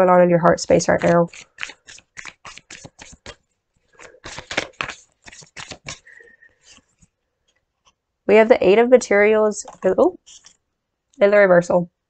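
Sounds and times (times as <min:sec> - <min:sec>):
cards being shuffled: 0:00.9 - 0:07.2, 0:09.6 - 0:10.6.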